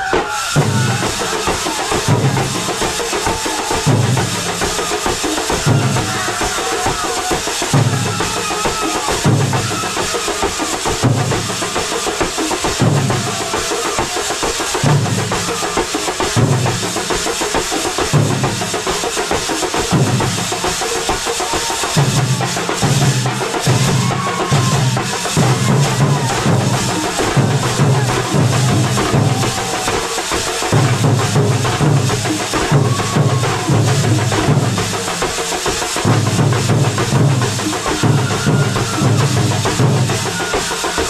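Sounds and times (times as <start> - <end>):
drum and cymbal hits: 0.0 - 41.0.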